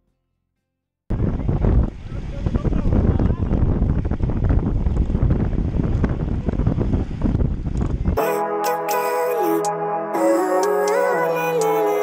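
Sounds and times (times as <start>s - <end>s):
wind buffeting microphone: 1.1s - 8.2s.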